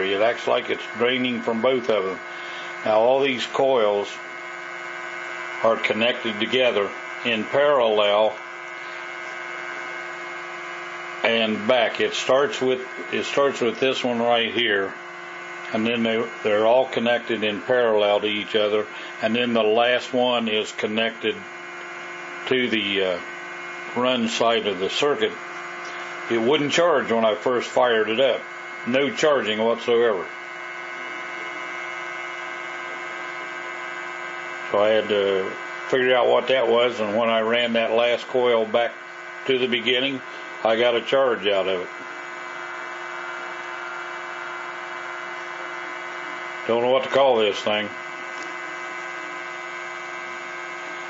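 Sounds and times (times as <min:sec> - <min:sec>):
pulse motor humming: 0:00.0 - 0:51.0.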